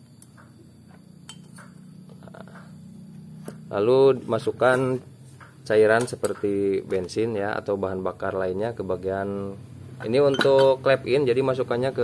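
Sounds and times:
light metallic clinks: 1.2 - 2.8, 10.0 - 10.9.

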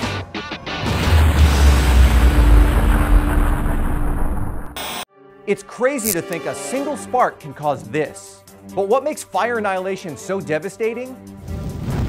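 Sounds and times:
deep rumbling boom: 1.4 - 4.8.

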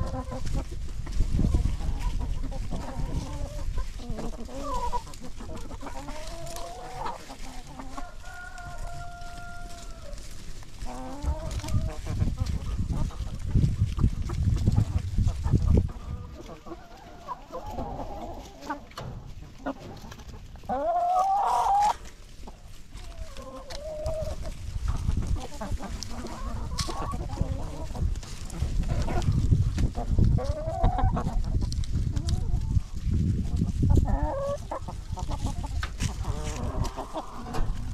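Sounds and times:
chickens clucking softly: 0.0 - 37.9.

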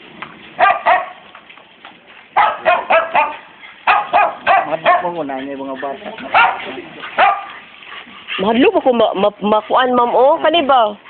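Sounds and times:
dogs barking: 0.6 - 1.4, 2.3 - 8.9.

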